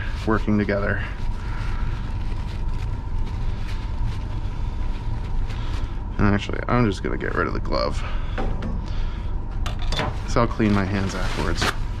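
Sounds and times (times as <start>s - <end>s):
light rubbing strokes: 0.0s - 6.2s
faint constant hum: 0.0s - 12.0s
low mechanical rumble: 0.0s - 12.0s.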